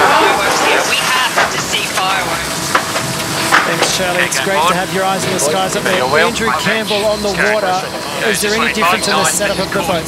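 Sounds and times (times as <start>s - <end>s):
voices: 0.0s - 2.6s, 3.4s - 10.0s.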